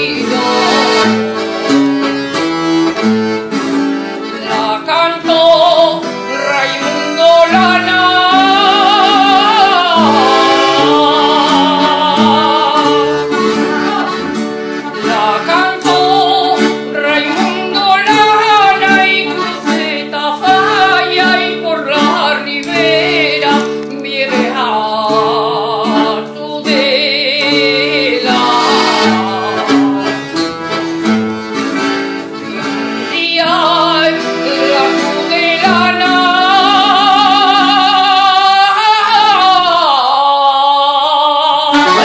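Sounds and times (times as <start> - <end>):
woman singing: 0.0 - 1.4, 4.4 - 6.2, 6.8 - 30.2, 33.1 - 42.0
accordion chords: 0.0 - 42.0
acoustic guitar: 0.0 - 42.0.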